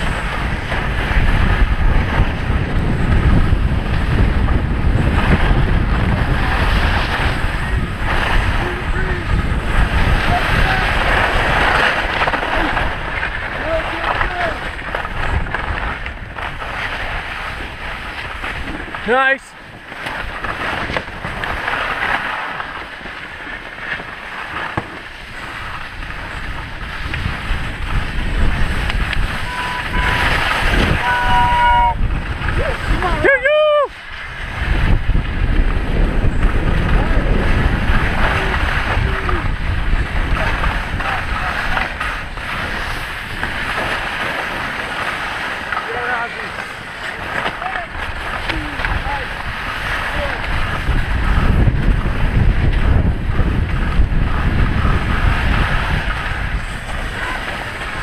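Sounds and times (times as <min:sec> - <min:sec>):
wind buffeting microphone: 0:00.0 - 0:24.1, 0:24.7 - 0:58.0
skis scraping over snow: 0:00.0 - 0:58.0
person shouting: 0:31.0 - 0:32.0, 0:32.6 - 0:33.9.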